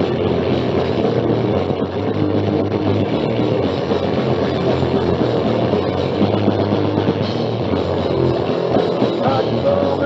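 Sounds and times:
bass guitar: 0.0 - 10.0
distorted electric guitar: 0.0 - 10.0.

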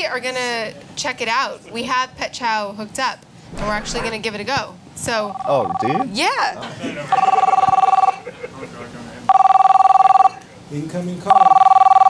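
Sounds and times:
telephone ringing: 5.2 - 6.1, 7.1 - 8.2, 9.3 - 10.4, 11.3 - 12.0.

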